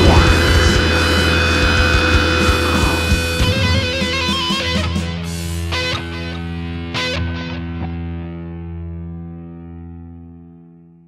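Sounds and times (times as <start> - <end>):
low bass tone: 0.0 - 4.2
drums: 0.0 - 7.4
electric guitar: 0.0 - 11.0.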